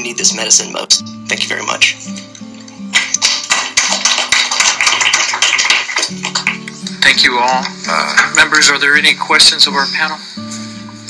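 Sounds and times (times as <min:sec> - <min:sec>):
plucked guitar music: 0:00.0 - 0:11.0.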